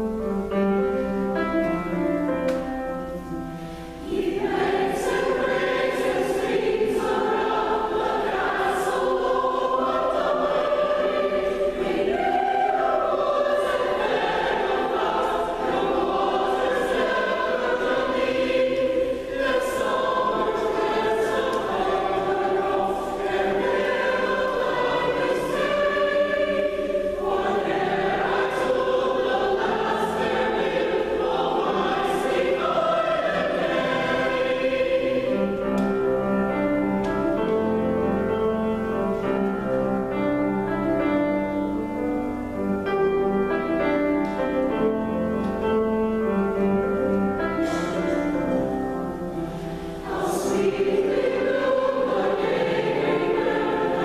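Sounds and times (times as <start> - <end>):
choir singing: 0.0 - 54.0
piano accompaniment: 0.0 - 54.0.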